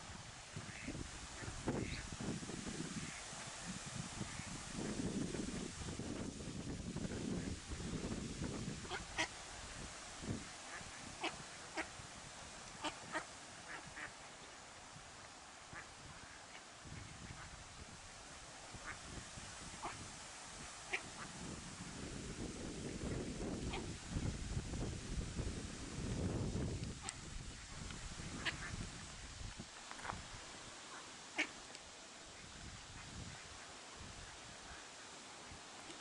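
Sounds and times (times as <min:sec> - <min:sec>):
wind rumble on microphone: 0:00.0 - 0:14.1, 0:14.9 - 0:30.5, 0:32.4 - 0:34.8
duck calls: 0:08.9 - 0:09.3, 0:10.7 - 0:11.9, 0:12.8 - 0:14.1, 0:19.8 - 0:20.0, 0:30.9 - 0:31.6.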